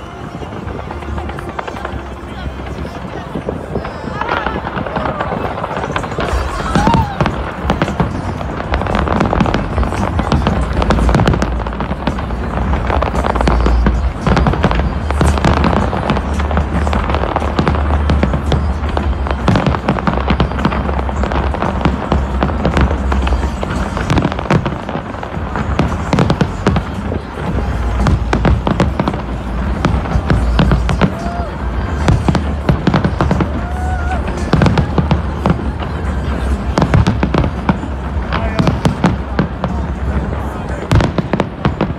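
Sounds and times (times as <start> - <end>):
deep fireworks booms: 0.0 - 41.9
fireworks crackling and popping: 0.0 - 41.9.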